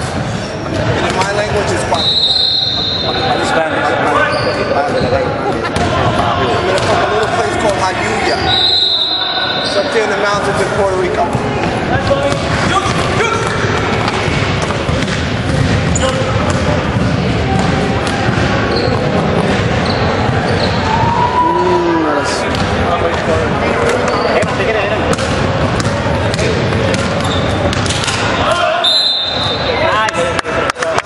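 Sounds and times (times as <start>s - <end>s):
din of indistinct voices: 0.0s - 31.0s
basketball bouncing on wooden floor: 12.3s - 20.8s.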